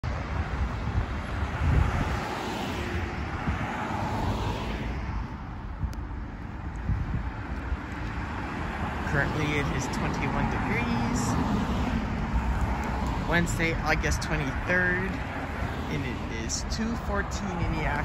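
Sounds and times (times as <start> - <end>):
cars passing: 0.0 - 18.0
person speaking: 9.0 - 11.5, 13.2 - 18.0.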